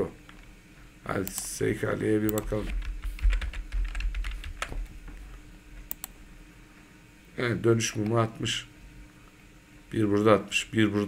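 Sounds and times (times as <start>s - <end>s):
keyboard typing: 2.3s - 4.8s.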